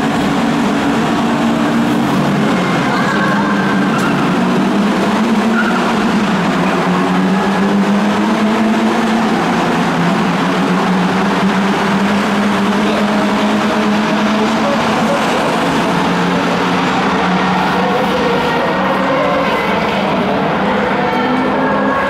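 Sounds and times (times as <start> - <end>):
race car engines accelerating: 0.0 - 22.0.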